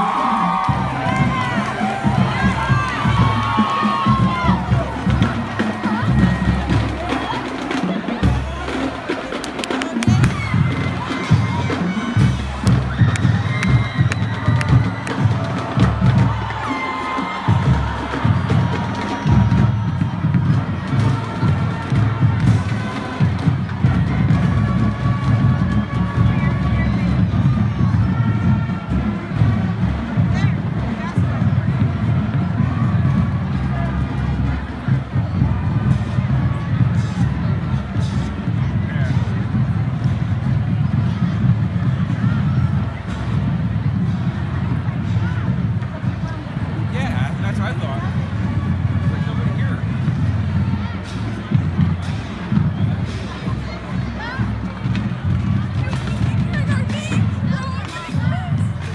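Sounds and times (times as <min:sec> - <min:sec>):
crowd cheering and talking: 0:00.0 - 0:58.9
marching band playing: 0:00.0 - 0:58.9.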